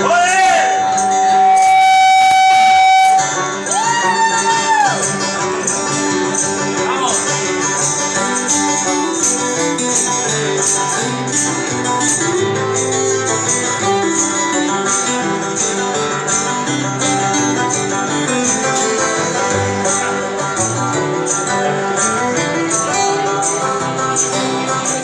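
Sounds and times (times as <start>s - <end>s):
picked banjo: 0.0s - 25.0s
strummed acoustic guitars: 0.0s - 25.0s.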